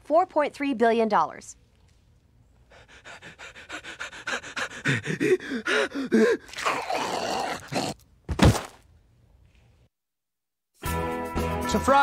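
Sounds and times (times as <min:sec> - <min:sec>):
man panting excitedly: 0:02.6 - 0:06.6.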